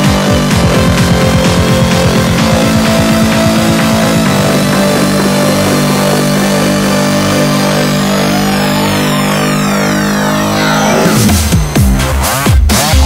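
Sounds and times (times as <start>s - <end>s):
rising synth sweep: 0.0s - 12.5s
electronic dance music: 0.0s - 13.0s
high falling sweeps: 0.1s - 12.1s.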